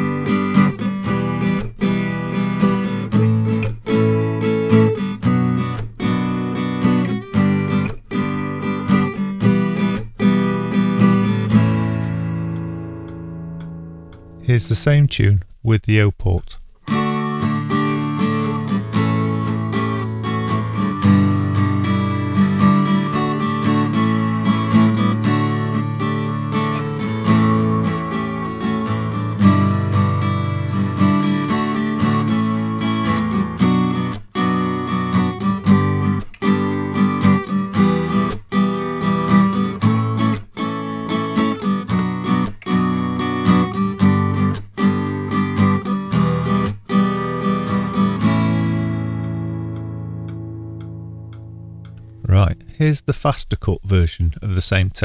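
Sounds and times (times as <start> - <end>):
acoustic guitar strumming chords: 0.0 - 54.1.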